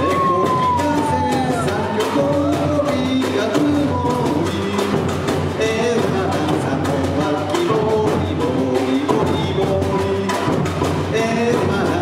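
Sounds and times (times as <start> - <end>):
samba band percussion: 0.0 - 12.0.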